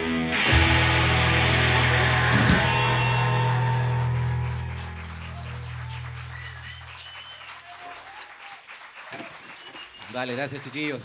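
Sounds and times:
rock band chord ringing: 0.0s - 6.2s
small group clapping: 1.7s - 11.0s.

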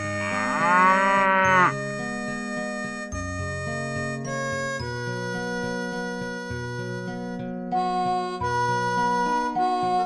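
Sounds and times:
cow mooing: 0.0s - 1.8s
background music: 0.0s - 10.0s.

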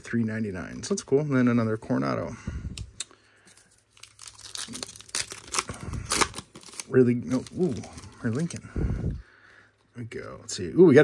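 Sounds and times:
foil wrapper tearing and crinkling: 3.7s - 8.5s.

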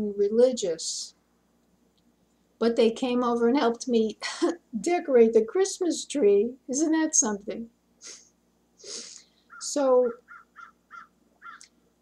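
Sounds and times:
crow cawing: 10.2s - 11.7s.

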